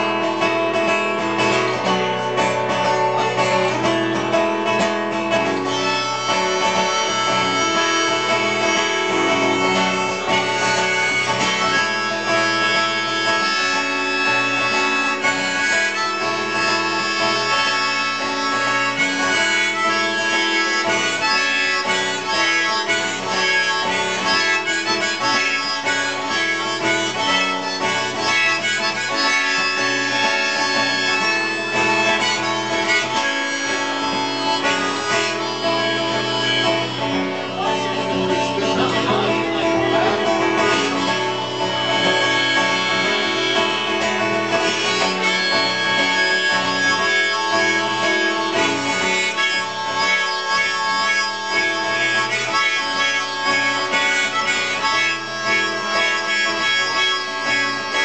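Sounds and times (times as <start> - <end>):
acoustic guitar strumming: 0.0 - 58.0
harmonica playing: 0.0 - 58.0.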